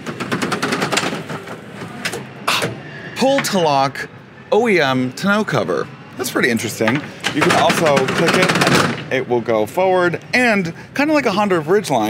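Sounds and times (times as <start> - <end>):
tonneau cover rattling on rails: 0.0 - 2.1.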